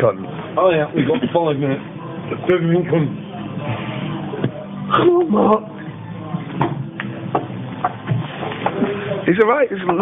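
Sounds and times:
pub chatter: 0.0s - 10.0s.

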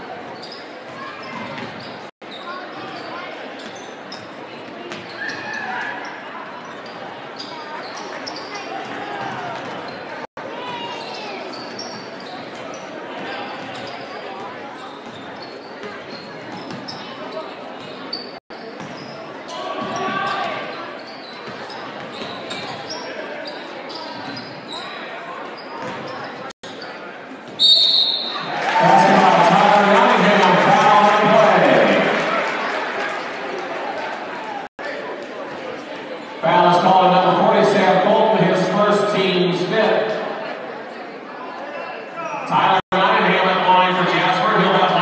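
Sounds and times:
sneakers squeaking on hardwood: 0.2s - 5.6s, 6.6s - 10.1s, 10.7s - 28.3s
crowd cheering: 28.0s - 34.7s.

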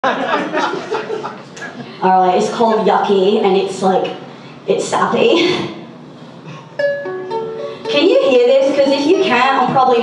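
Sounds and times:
ukulele notes plucked: 6.8s - 8.4s.

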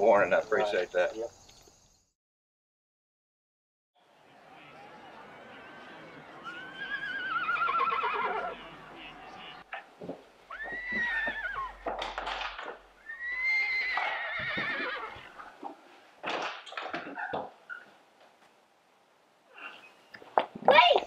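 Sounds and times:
horse whinnying: 4.8s - 9.6s, 10.5s - 15.6s.

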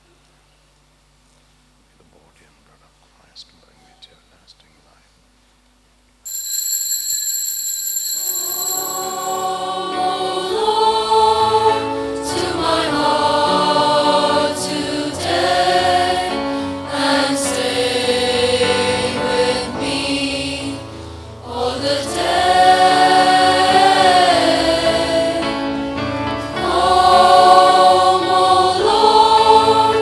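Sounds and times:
sustained instrumental chord: 8.1s - 14.4s
choir singing a hymn: 8.2s - 30.0s.

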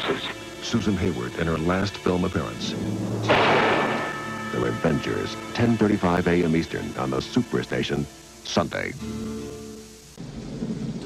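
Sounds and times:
steady rain: 0.0s - 11.0s
held music chord: 0.5s - 8.4s
low thunder rumble: 2.5s - 4.4s, 10.2s - 11.0s.

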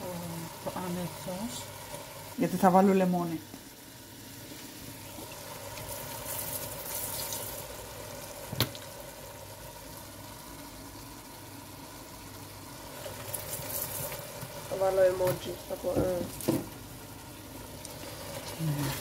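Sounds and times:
pot bubbling on stove: 0.0s - 19.0s.

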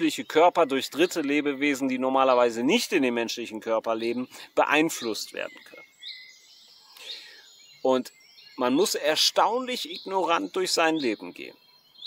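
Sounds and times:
man's voice: 0.0s - 5.8s, 7.9s - 11.6s
birds chirping faintly: 0.0s - 12.0s
light outdoor background: 0.0s - 12.0s.

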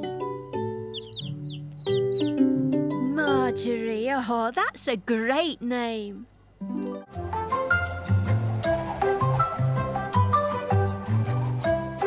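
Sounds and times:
soft background music: 0.0s - 4.1s, 6.6s - 12.0s
chick cheeping: 0.8s - 3.6s.

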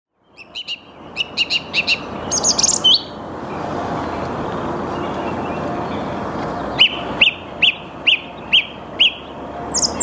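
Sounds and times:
song thrush singing: 0.1s - 10.0s
steady background noise: 0.2s - 10.0s.

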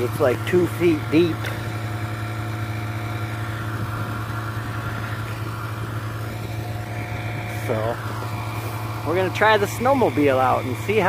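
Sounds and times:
snowmobile engine idling: 0.0s - 11.0s.

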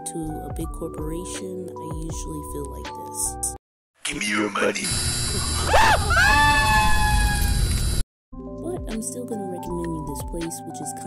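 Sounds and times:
person screaming high-pitched: 5.7s - 7.6s.

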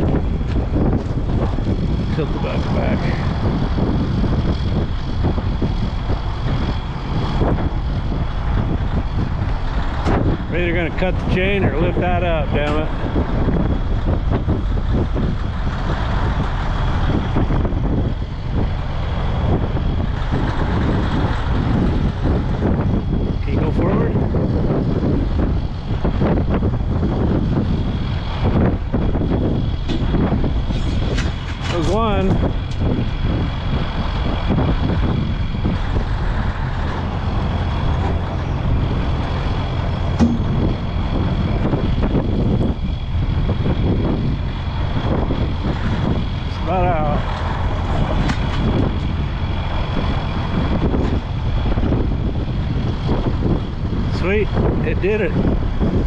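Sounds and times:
high whine: 0.0s - 32.8s, 33.4s - 52.3s
diesel engine rumbling under load: 0.0s - 56.0s.

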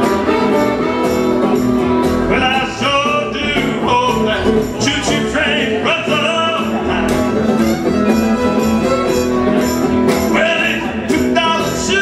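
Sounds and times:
bowed fiddle: 0.0s - 1.6s, 7.0s - 10.1s
plucked upright bass: 0.0s - 12.0s
strummed acoustic guitar: 0.0s - 12.0s.

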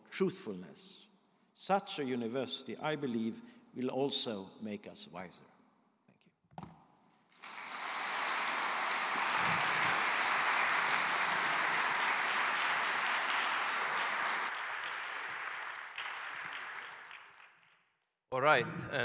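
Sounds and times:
audience applauding: 7.3s - 17.8s.

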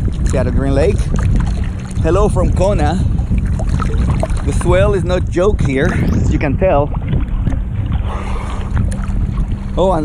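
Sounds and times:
water sloshing and splashing: 0.0s - 10.0s
wind buffeting microphone: 0.0s - 10.0s.

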